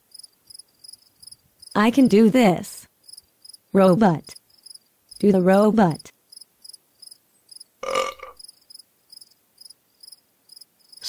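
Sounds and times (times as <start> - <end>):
cricket chirping: 0.1 - 1.7, 3.0 - 3.6, 4.3 - 5.2, 6.3 - 11.0.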